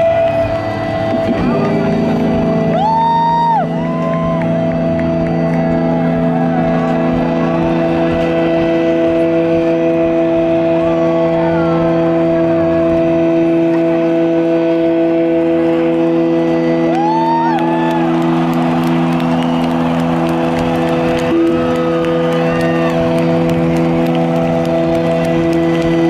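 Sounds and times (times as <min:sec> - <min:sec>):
crowd whistling: 0:00.0 - 0:26.0
sustained amplified guitar chord: 0:00.0 - 0:26.0.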